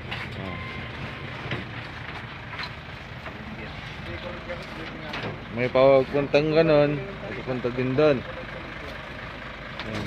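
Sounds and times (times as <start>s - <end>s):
vehicle engine and road noise: 0.0s - 10.0s
faint voices talking: 3.2s - 10.0s.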